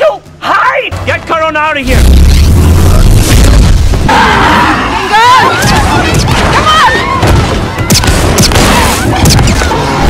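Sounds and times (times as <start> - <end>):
harsh noisy blast: 1.8 - 4.9.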